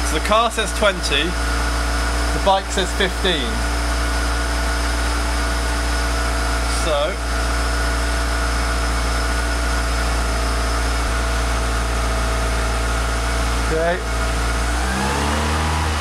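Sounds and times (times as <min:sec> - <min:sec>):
car engine running steadily: 0:00.0 - 0:16.0.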